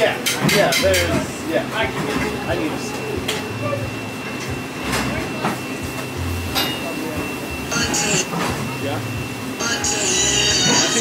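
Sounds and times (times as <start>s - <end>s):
background voices chattering: 0.0s - 11.0s
music: 9.0s - 11.0s.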